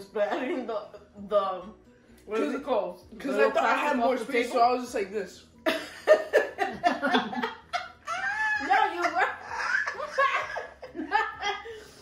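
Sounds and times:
women laughing hard: 5.7 - 11.9.

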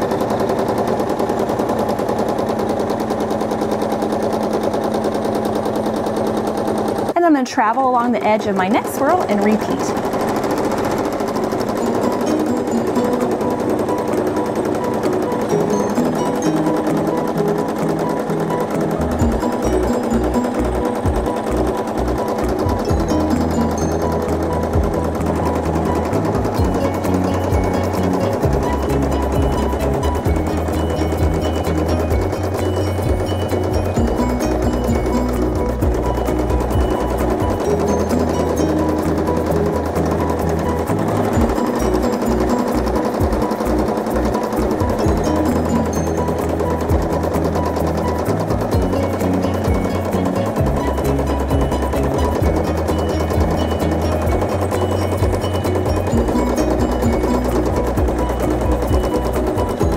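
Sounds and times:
sewing machine stitching: 0.0 - 59.9
background music with bass notes: 14.9 - 59.9.

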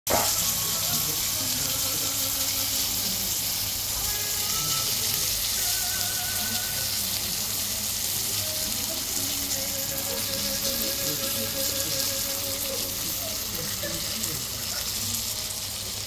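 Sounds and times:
meat sizzling on a hot platter: 0.1 - 16.0.

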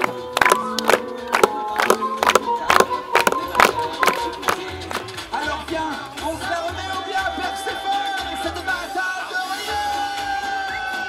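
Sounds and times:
music with sharp percussive beat: 0.0 - 11.0
person singing: 0.0 - 11.0.

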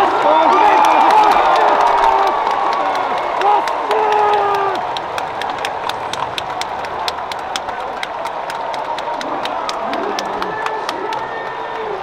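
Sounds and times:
crowd cheering: 0.0 - 12.0
crowd clapping: 0.0 - 12.0.

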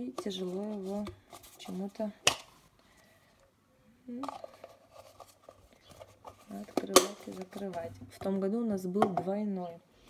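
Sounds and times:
plastic cup and lid clicks: 6.6 - 7.7.

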